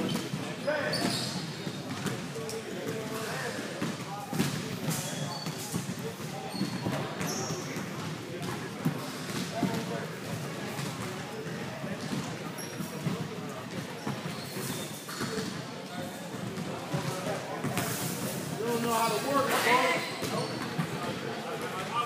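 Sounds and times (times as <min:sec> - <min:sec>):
shoe squeaks: 0:00.0 - 0:02.0, 0:04.8 - 0:07.9, 0:12.6 - 0:13.2, 0:14.0 - 0:15.6, 0:17.7 - 0:21.0
spectators chattering: 0:00.0 - 0:22.0
basketball bouncing on court: 0:03.8 - 0:14.4.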